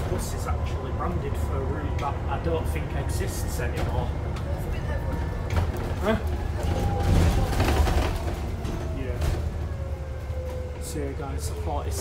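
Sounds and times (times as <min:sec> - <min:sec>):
bus engine and road rumble: 0:00.0 - 0:12.0
body rattles: 0:05.1 - 0:09.4.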